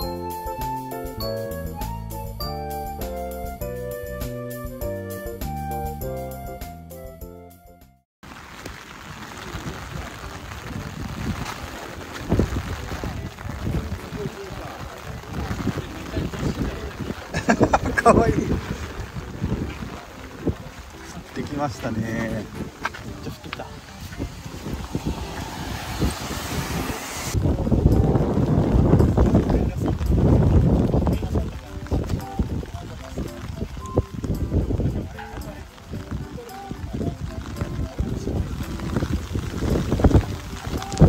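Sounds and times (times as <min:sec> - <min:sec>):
light rain falling: 0:08.2 - 0:41.0
wind buffeting microphone: 0:09.0 - 0:41.0.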